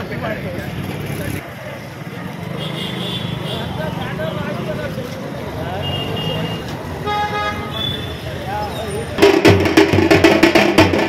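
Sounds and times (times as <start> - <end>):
men talking: 0.0 - 2.5, 3.3 - 9.4
street traffic: 0.0 - 11.0
vehicle horn honking: 5.8 - 8.2.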